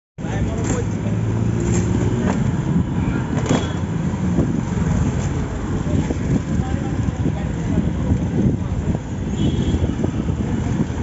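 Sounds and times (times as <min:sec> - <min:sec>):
road traffic rumble: 0:00.2 - 0:11.0.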